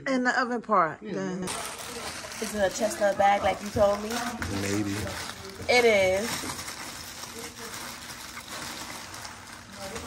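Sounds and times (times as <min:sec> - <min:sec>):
plastic wrapping rustling: 0:01.5 - 0:10.0.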